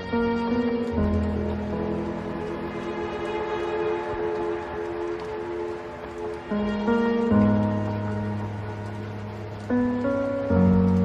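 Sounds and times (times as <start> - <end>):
soft sustained music chord: 0.0 - 11.0.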